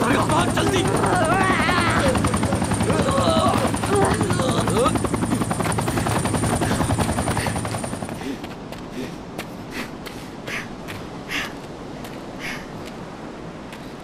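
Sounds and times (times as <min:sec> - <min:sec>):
men shouting: 0:00.0 - 0:05.2
helicopter rotors chopping: 0:00.0 - 0:10.1.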